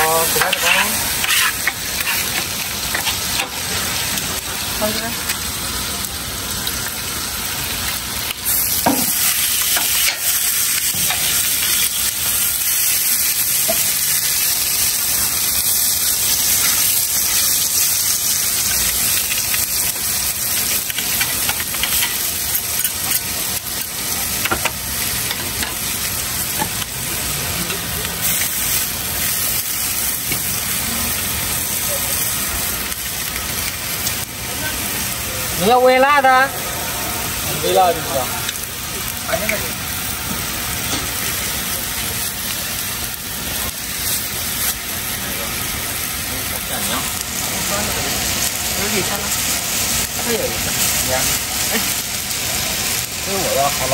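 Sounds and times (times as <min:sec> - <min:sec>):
food sizzling on a griddle: 0:00.0 - 0:53.9.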